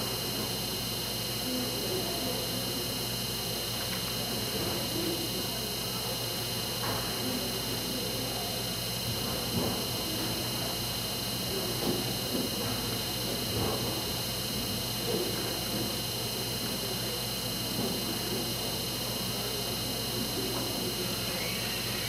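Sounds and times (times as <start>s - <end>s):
low electrical hum: 0.0s - 22.0s
distant indistinct chatter: 15.0s - 22.0s.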